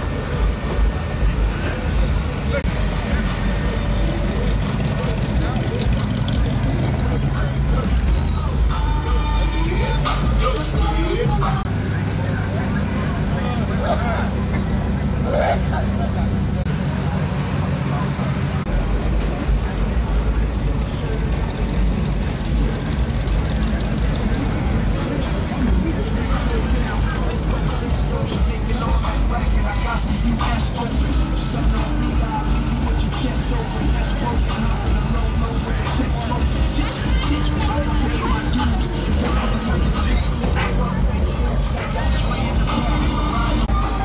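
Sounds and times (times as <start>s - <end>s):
cars rolling past slowly: 0.0s - 44.0s
crowd chatter: 0.0s - 44.0s.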